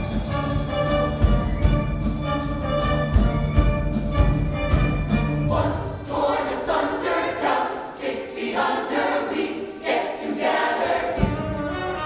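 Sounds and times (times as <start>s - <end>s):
bass: 0.0s - 5.9s
ensemble singing together: 5.3s - 12.0s.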